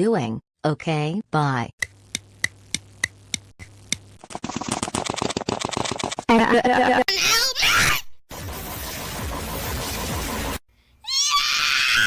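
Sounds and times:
fast rattling clatter: 0:04.2 - 0:06.3.

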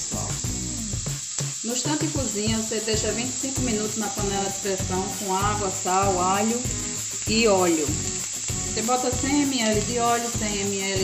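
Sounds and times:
onions frying in oil: 0:00.0 - 0:11.0.

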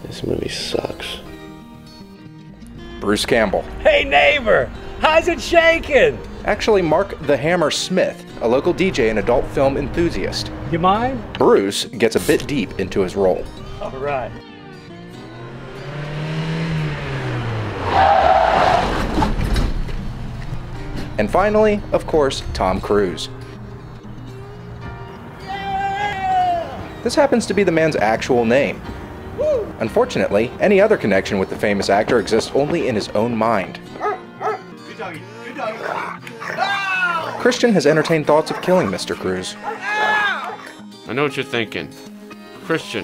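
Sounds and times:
background music with low note: 0:00.0 - 0:18.0, 0:19.5 - 0:43.0
tires squealing: 0:15.1 - 0:21.8
car engine speeding past: 0:15.2 - 0:20.9
man whooping yell: 0:25.4 - 0:26.8, 0:29.4 - 0:29.7, 0:35.3 - 0:37.4, 0:39.6 - 0:40.7.

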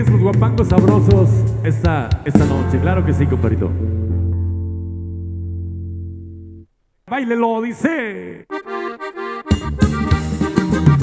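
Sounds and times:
bass and electric guitar chord: 0:02.4 - 0:06.7.

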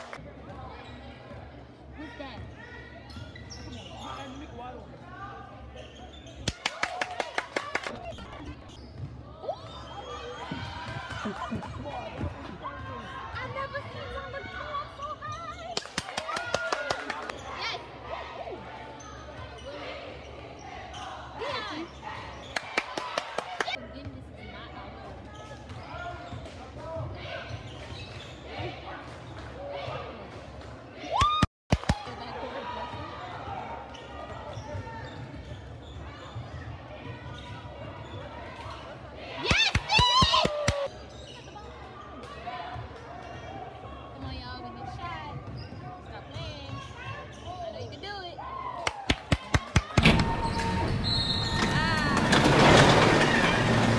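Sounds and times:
sneakers squeaking on court: 0:00.7 - 0:04.9, 0:05.6 - 0:06.5, 0:08.4 - 0:10.6, 0:33.8 - 0:38.4, 0:40.9 - 0:42.2, 0:45.3 - 0:48.0.

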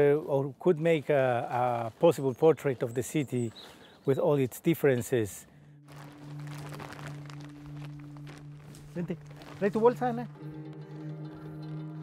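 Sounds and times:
sack rustling and crinkling: 0:00.9 - 0:03.2, 0:05.8 - 0:12.0.

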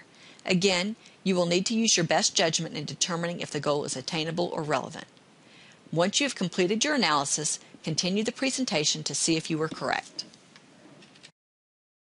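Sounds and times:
faint room hiss: 0:00.0 - 0:11.3.

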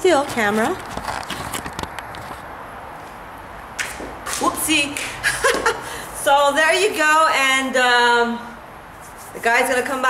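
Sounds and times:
camera handling noise: 0:00.8 - 0:02.5.

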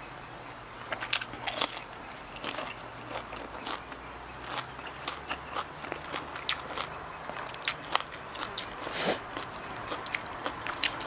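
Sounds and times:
person chewing crunchy food: 0:00.8 - 0:11.0.

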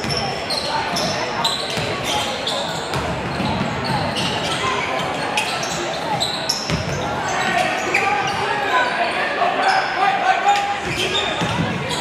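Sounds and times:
sneakers squeaking on court: 0:00.0 - 0:08.7, 0:10.8 - 0:12.0
voices of players and spectators: 0:00.0 - 0:12.0
basketball dribbling: 0:06.7 - 0:06.9.

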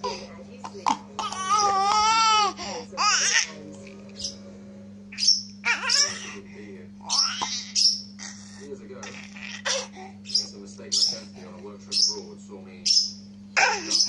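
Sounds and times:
baby laughing: 0:00.8 - 0:03.6, 0:05.1 - 0:10.2, 0:13.6 - 0:14.0
baby squealing: 0:01.2 - 0:03.5, 0:05.1 - 0:06.4, 0:07.0 - 0:09.9, 0:13.6 - 0:14.0.

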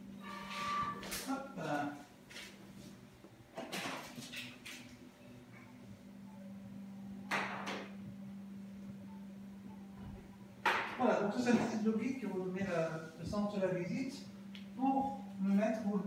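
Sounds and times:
low hum: 0:04.9 - 0:16.0.

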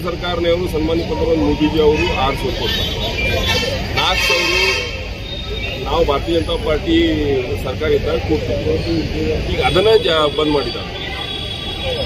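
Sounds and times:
man speaking: 0:00.0 - 0:02.7, 0:05.8 - 0:10.9
low rumble of street traffic: 0:00.0 - 0:12.0.

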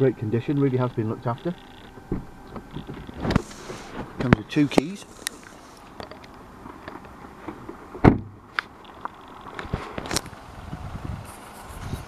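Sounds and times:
car door thud: 0:02.0 - 0:04.8, 0:08.0 - 0:08.4.

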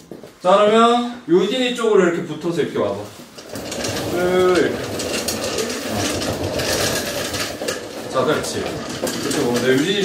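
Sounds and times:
people shuffling and rustling: 0:00.0 - 0:01.1, 0:02.5 - 0:10.0
rattling rumble: 0:03.4 - 0:10.0.

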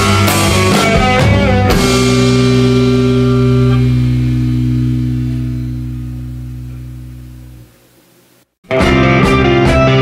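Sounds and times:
rock chord on guitar and bass: 0:00.0 - 0:07.9.

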